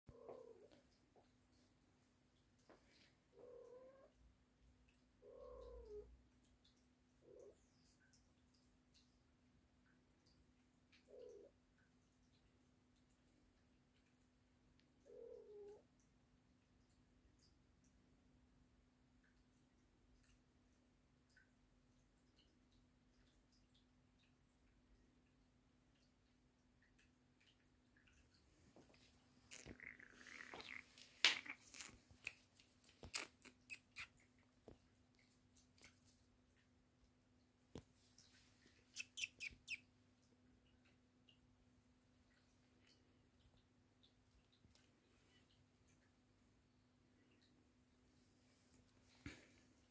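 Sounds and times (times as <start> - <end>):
faint irregular clicks: 0.1 - 49.9
faint steady hum: 0.1 - 49.9.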